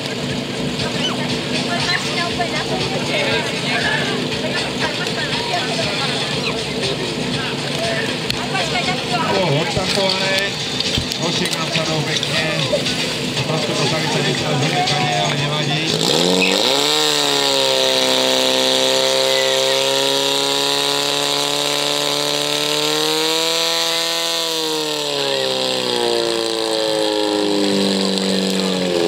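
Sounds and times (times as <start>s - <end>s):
fire pump engine revving: 0.0s - 29.0s.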